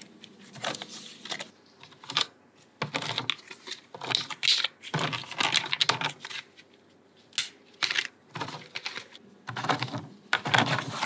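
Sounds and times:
dry food crackling: 0.0 - 11.0
plastic trays clattering: 0.5 - 6.5, 7.8 - 11.0.

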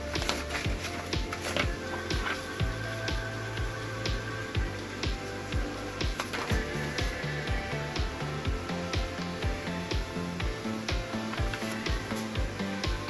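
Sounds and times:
bass line: 0.0 - 13.0.

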